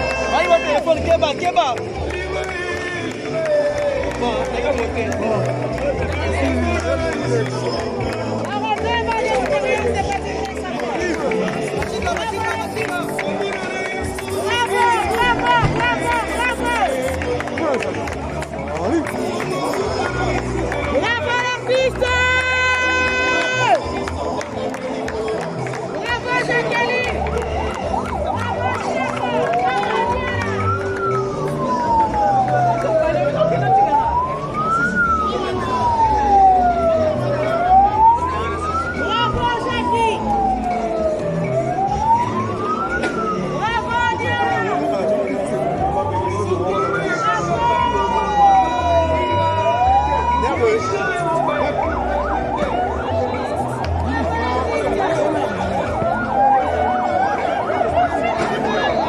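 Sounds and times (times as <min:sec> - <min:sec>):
crowd voices: 0:00.0 - 0:59.0
vehicle siren wailing: 0:11.5 - 0:17.2, 0:18.0 - 0:59.0.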